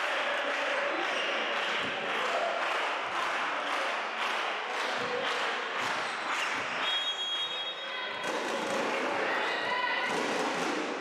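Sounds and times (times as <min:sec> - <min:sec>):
crowd clapping and cheering: 0:00.0 - 0:11.0
referee's whistle: 0:06.8 - 0:07.9.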